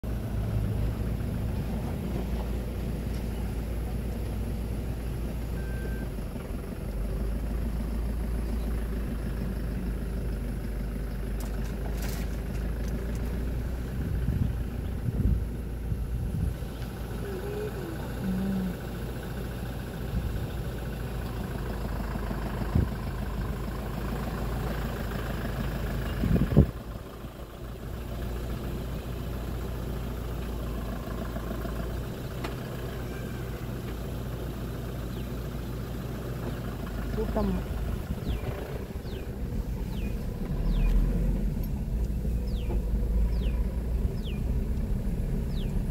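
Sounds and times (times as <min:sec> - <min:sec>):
engine idling: 0:00.0 - 0:45.9.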